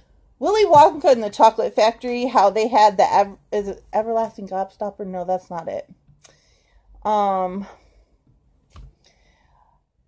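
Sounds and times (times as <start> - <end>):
soft breath: 6.3 - 7.0, 9.0 - 10.0.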